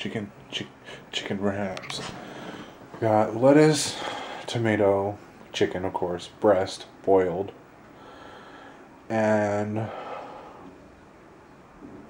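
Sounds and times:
person speaking: 0.0 - 7.6
faint steady hiss: 0.0 - 12.0.

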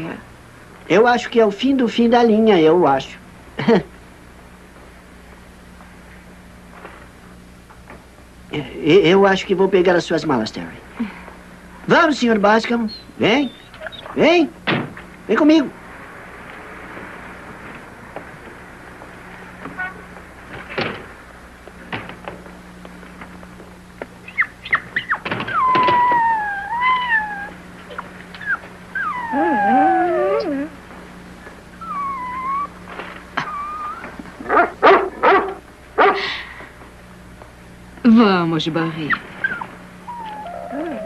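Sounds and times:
dog whining: 12.8 - 14.2, 24.2 - 30.8, 31.8 - 36.3, 39.1 - 41.0.

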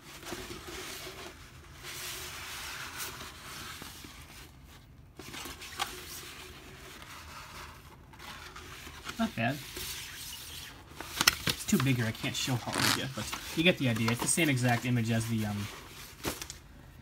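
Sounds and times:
paper sheets rustling: 0.0 - 16.6.

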